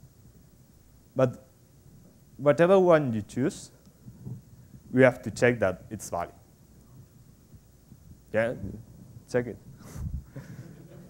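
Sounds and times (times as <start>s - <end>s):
faint low hum: 0.0s - 11.0s
man speaking: 4.9s - 6.4s, 8.3s - 9.6s.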